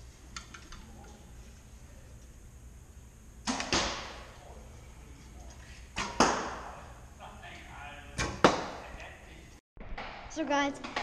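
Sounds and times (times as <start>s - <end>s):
arrow striking target: 3.4s - 4.4s, 6.0s - 6.7s, 8.2s - 8.8s.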